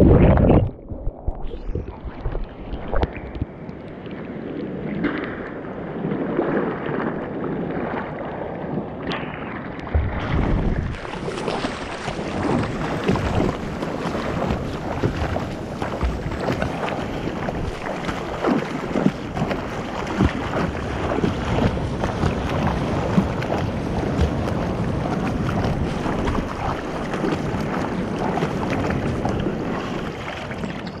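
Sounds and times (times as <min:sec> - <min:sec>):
water slapping: 0:00.0 - 0:04.0, 0:04.9 - 0:31.0
wind buffeting microphone: 0:00.0 - 0:31.0
whitewater rushing and splashing: 0:09.2 - 0:31.0.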